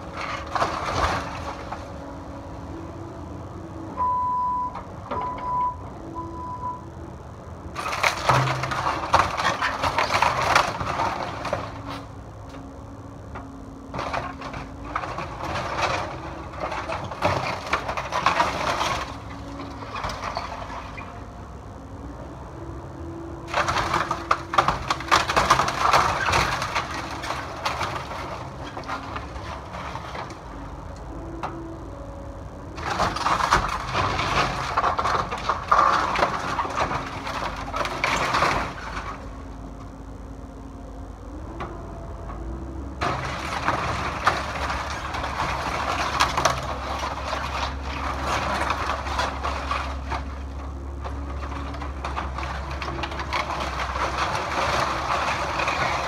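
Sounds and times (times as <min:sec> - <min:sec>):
bucket crunching wood and metal: 0:00.0 - 0:02.2, 0:07.8 - 0:12.7, 0:13.8 - 0:21.4, 0:23.5 - 0:30.8, 0:32.7 - 0:39.4, 0:43.0 - 0:56.0
wood cracking and splintering: 0:00.0 - 0:03.5, 0:07.1 - 0:22.0, 0:23.4 - 0:40.4, 0:41.6 - 0:56.0
excavator engine hum: 0:00.0 - 0:56.0.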